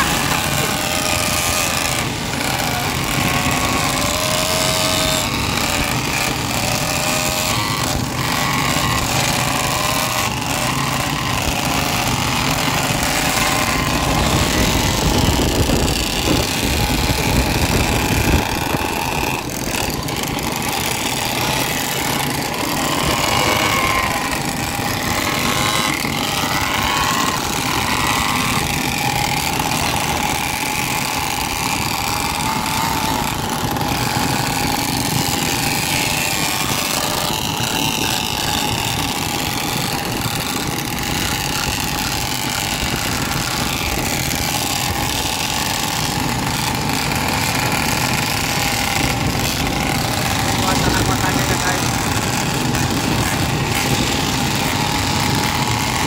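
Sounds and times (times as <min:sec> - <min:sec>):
small motorcycle engines revving: 0:00.0 - 0:56.0.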